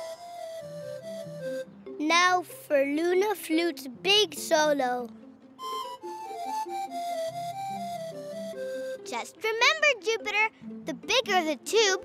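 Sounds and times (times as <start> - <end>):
pan flute solo: 0.0 - 1.7, 5.6 - 9.1
soft lower accompaniment: 0.0 - 12.0.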